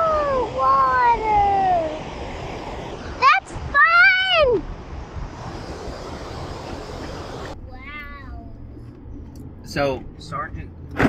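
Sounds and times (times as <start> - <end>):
river water rushing at waterfall: 0.0 - 7.6
car road hum: 0.0 - 11.0.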